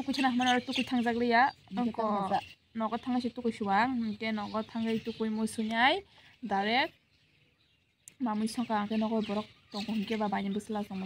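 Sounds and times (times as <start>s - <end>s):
woman talking: 0.0s - 7.0s, 8.1s - 11.0s.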